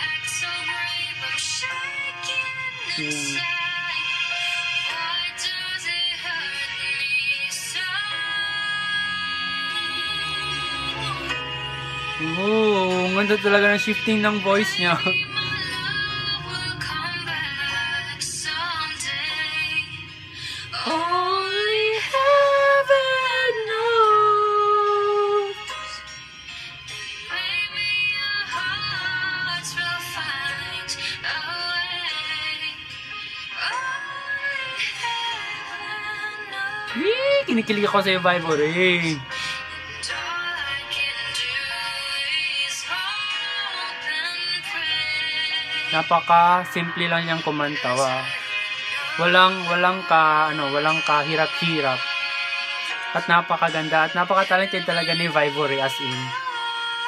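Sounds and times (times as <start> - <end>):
woman singing pop ballad: 0.0 - 57.0.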